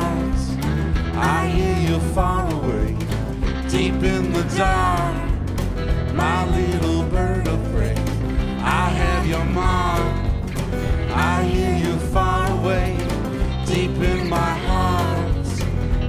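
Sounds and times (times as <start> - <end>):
drums: 0.0 - 16.0
electric bass: 0.0 - 16.0
sliding steel guitar lead: 0.0 - 16.0
strummed acoustic guitar: 0.0 - 16.0.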